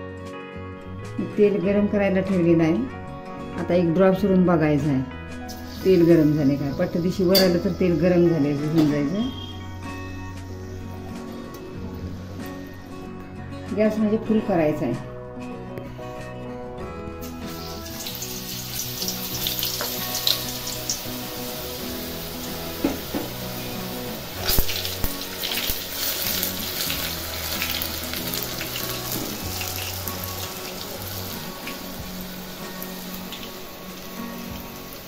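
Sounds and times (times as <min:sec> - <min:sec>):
batter sizzling in hot oil: 0:05.4 - 0:07.5, 0:17.2 - 0:35.0.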